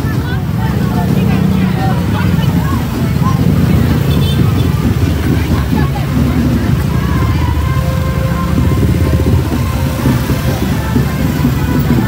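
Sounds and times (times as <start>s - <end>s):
crowd voices: 0.0s - 12.0s
music: 0.0s - 12.0s
scooter and motorcycle engines: 0.0s - 12.0s.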